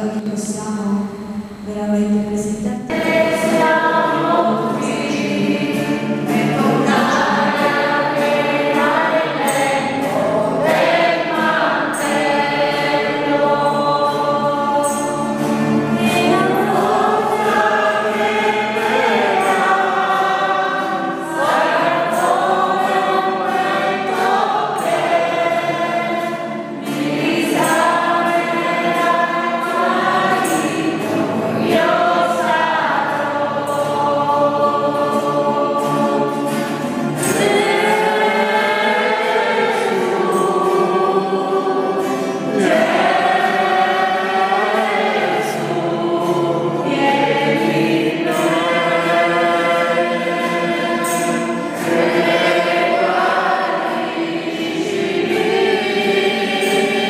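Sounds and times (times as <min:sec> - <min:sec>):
congregation singing: 0:00.0 - 0:57.0.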